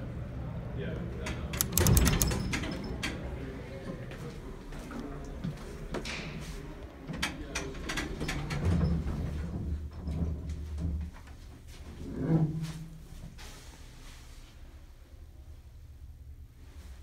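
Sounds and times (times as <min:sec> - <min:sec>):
elevator machinery humming: 0:00.0 - 0:03.6
elevator controls clicking: 0:01.6 - 0:02.8.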